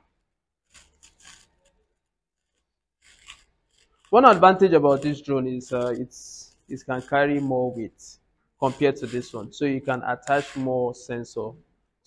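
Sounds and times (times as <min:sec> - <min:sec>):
faint rubbing or scraping: 0:00.7 - 0:11.4.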